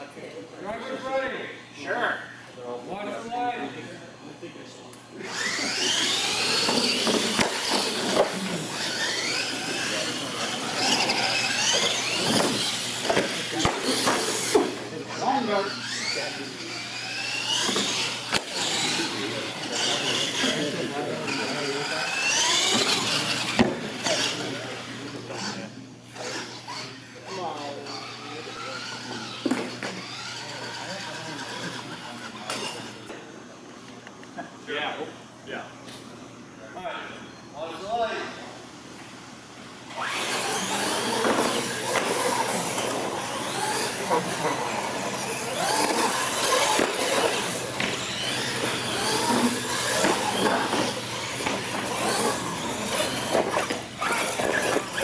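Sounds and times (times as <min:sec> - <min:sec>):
electric toy truck motors whining: 0:05.1 - 0:33.3, 0:39.9 - 0:55.0.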